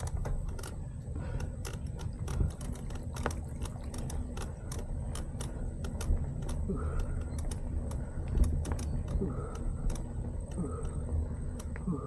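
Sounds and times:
bike clicks and rattles: 0.0s - 12.0s
low steady rumble: 0.0s - 12.0s.

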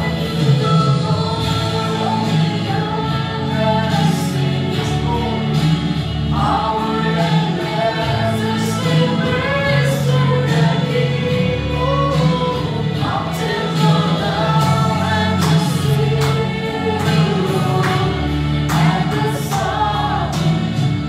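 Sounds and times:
woman singing gospel song: 0.0s - 21.0s.

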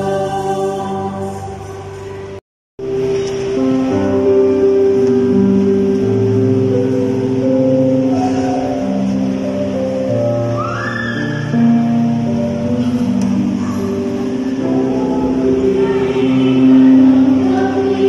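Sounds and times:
electronic keyboard chords: 1.2s - 18.0s.

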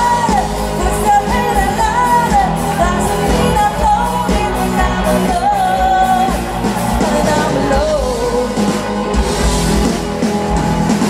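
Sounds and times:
woman singing lead vocal: 0.0s - 9.2s
live rock band playing: 0.0s - 11.0s.

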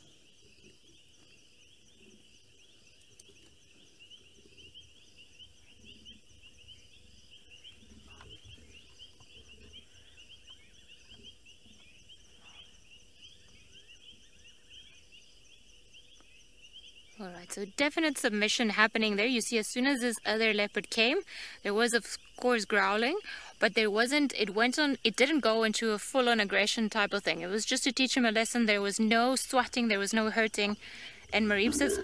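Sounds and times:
insects trilling: 0.0s - 32.0s
leopard growling: 31.0s - 32.0s.

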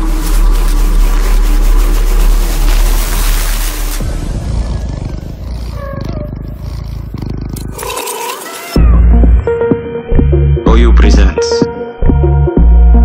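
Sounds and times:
deep bass: 0.0s - 7.7s, 8.8s - 13.0s.

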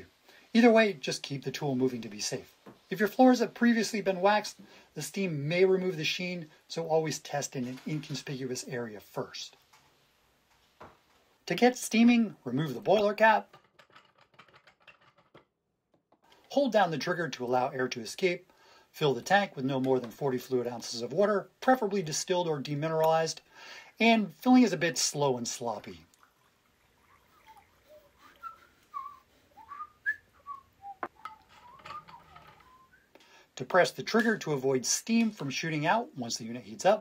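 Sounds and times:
person whistling notes: 28.2s - 33.1s.

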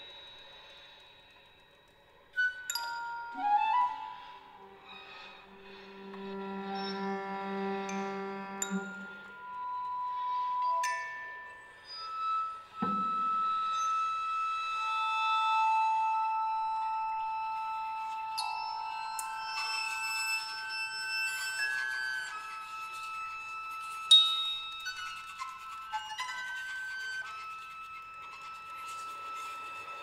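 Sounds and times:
chamber music: 2.4s - 30.0s.

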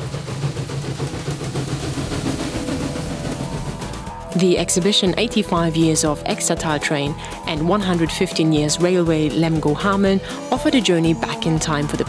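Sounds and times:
steam locomotive rumble and hiss: 0.0s - 6.4s, 7.1s - 8.0s.

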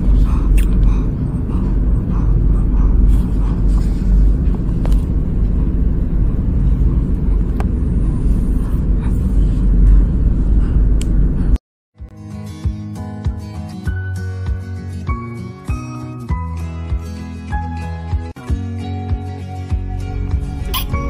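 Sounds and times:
loud steady low rumble: 0.0s - 11.6s, 19.9s - 21.0s.

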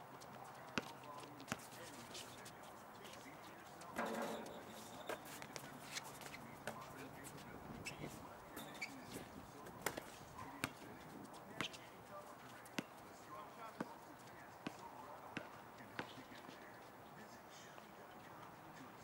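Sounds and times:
feet on court: 0.2s - 18.9s
ball bouncing on hard court: 4.0s - 5.3s
basketball clanging on rim: 4.0s - 5.4s.

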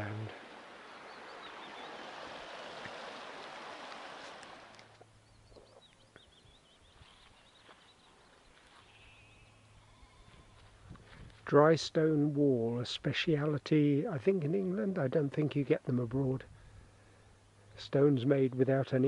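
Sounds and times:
faint bird chirps: 0.0s - 3.0s, 5.0s - 10.8s
brook rushing: 0.0s - 5.0s
distant sheep bleating: 9.2s - 10.7s.

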